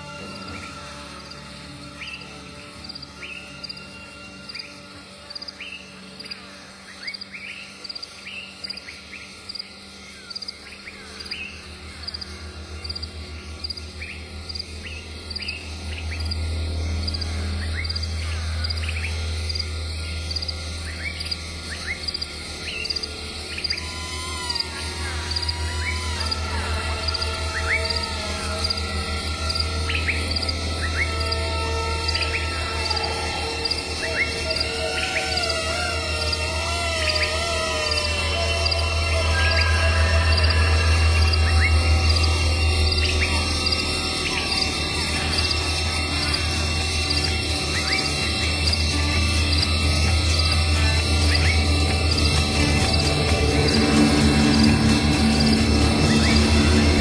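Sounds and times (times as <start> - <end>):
birds calling: 0.0 - 57.0
insects chirping: 0.0 - 57.0
low hum: 0.0 - 57.0
slow instrumental music: 0.0 - 57.0
steady high ticking: 40.3 - 57.0.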